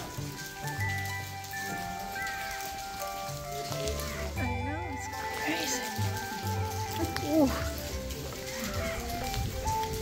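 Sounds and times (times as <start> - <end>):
background music with trills: 0.0 - 10.0.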